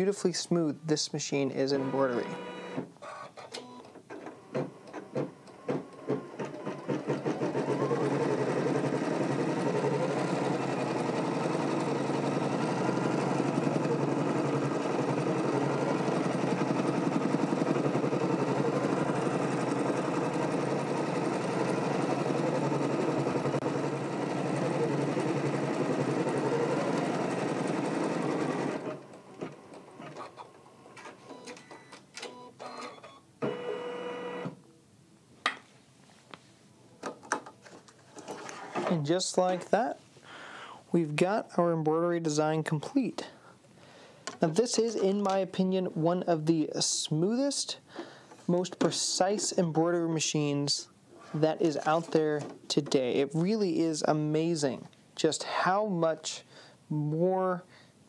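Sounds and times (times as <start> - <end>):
sewing machine stitching: 4.2 - 30.5.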